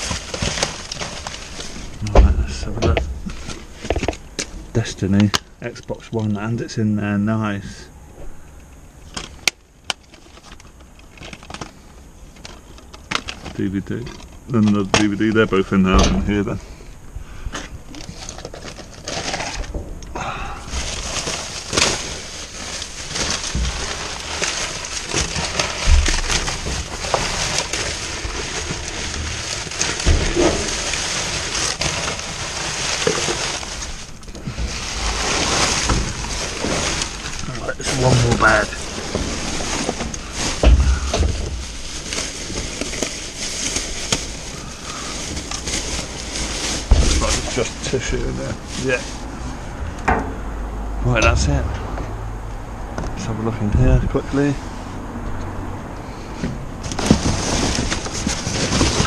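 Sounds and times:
plastic bags crinkling: 0.0s - 6.6s, 9.0s - 16.9s, 17.7s - 49.9s, 56.8s - 59.0s
knocks against bin: 15.9s - 16.4s.

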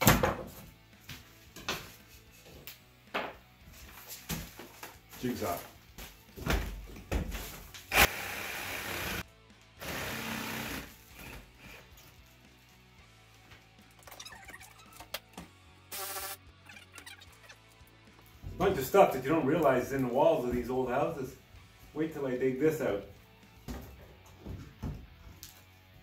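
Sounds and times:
background music: 0.0s - 26.0s
jigsaw cutting: 7.9s - 9.2s, 9.8s - 11.8s.

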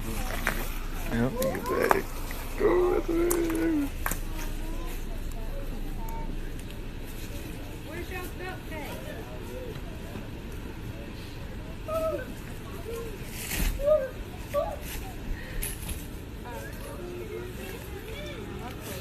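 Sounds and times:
steady low rumble: 0.0s - 17.8s
bystanders talking and exclaiming: 0.0s - 19.0s.

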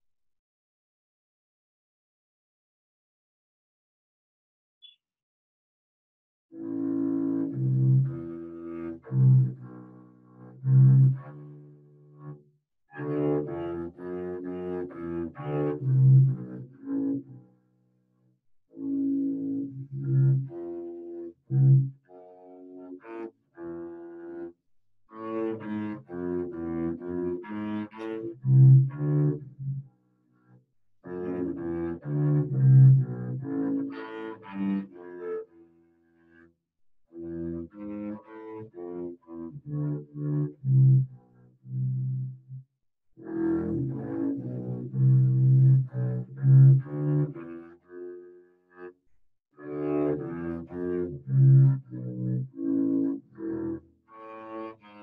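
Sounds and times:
bowed double bass: 6.6s - 12.4s, 13.0s - 17.5s, 18.8s - 24.5s, 25.2s - 29.9s, 31.0s - 35.4s, 37.2s - 42.6s, 43.2s - 48.2s, 49.6s - 54.6s.

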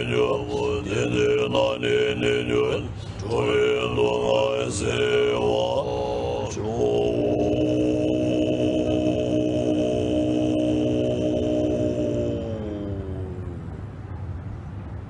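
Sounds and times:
deep throat-singing chant: 0.0s - 14.1s.

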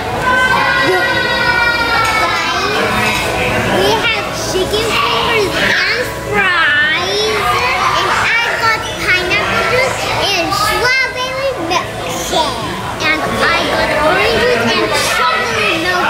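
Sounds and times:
children calling and chattering: 0.0s - 16.0s.

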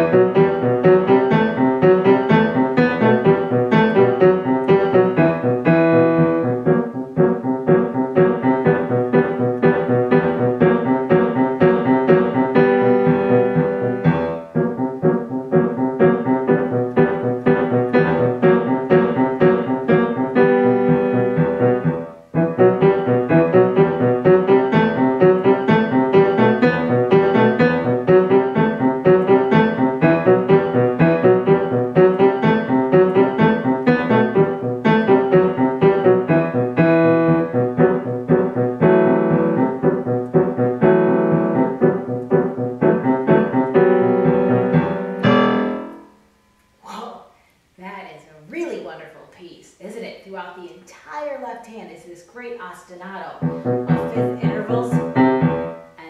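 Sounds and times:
fast grand piano playing: 0.0s - 46.2s, 53.3s - 56.0s.

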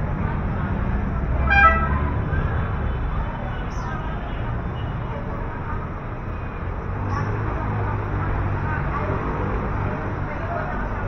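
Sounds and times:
street traffic rumble: 0.0s - 11.0s
vehicle horn toot: 1.5s - 2.0s.

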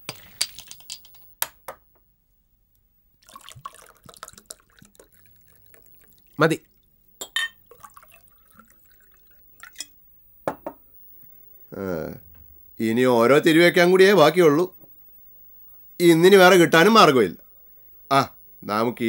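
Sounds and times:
drink poured into a glass: 3.2s - 6.4s, 7.2s - 9.9s
glass clinking against glass: 7.2s - 7.6s.

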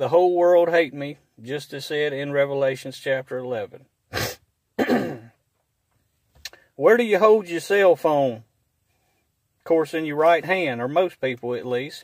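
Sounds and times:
man clearing his throat: 4.1s - 5.4s.

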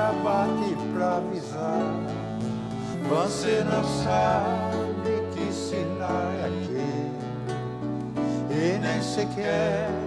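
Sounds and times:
accordion: 0.0s - 10.0s
acoustic guitars: 0.0s - 10.0s.

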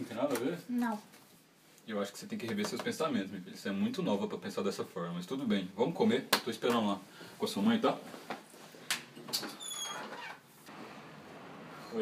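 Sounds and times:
door squeak: 9.3s - 10.4s.

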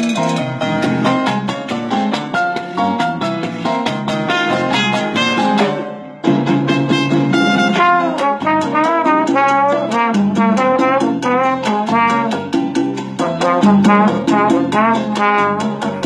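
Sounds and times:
latin backing track: 0.0s - 16.0s
trombone solo: 4.2s - 6.0s, 6.7s - 12.5s, 13.2s - 16.0s.

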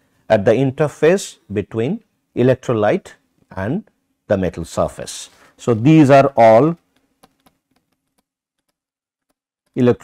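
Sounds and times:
stylus clicking on pen tablet: 6.7s - 9.9s.

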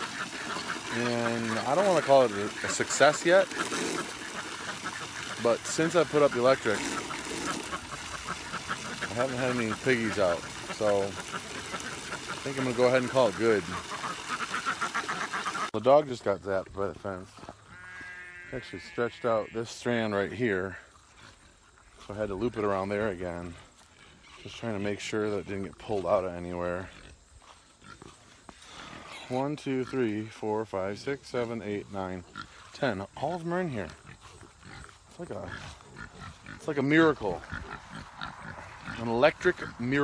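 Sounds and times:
pigs grunting: 0.0s - 15.7s, 17.4s - 40.0s
ducks quacking faintly: 0.0s - 40.0s
outdoor background noise: 0.0s - 40.0s.

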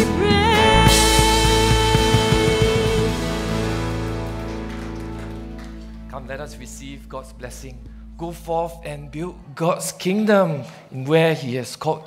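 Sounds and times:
band holding final chord: 0.4s - 9.4s.

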